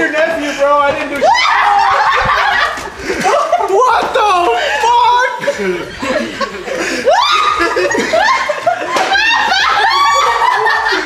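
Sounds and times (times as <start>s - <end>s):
people laughing and shrieking: 0.1s - 11.0s.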